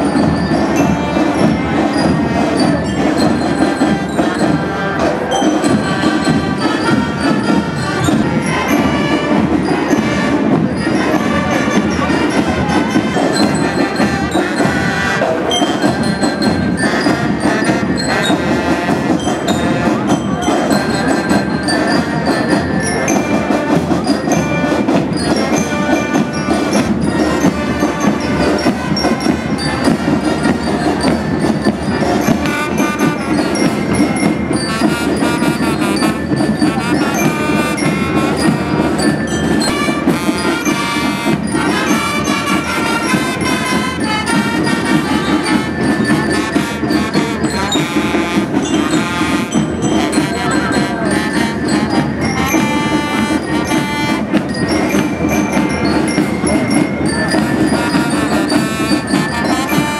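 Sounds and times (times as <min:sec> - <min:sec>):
band music with brass: 0:00.0 - 0:59.9
high bell-like tones: 0:00.0 - 0:59.9.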